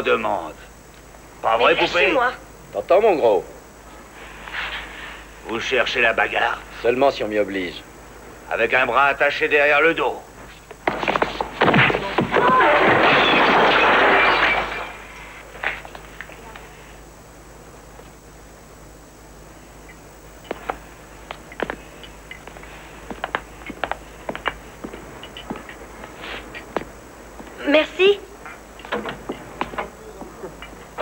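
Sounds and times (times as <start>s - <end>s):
scuffling and crashing: 10.8s - 15.8s.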